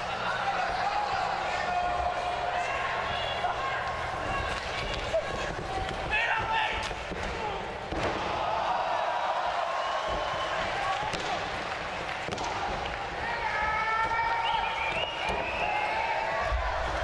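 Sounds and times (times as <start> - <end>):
people shouting: 0.0 - 11.3.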